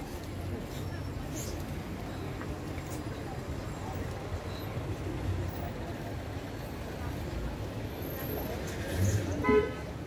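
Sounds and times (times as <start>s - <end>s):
street traffic: 0.0s - 10.0s
vehicle horn toot: 9.4s - 9.8s.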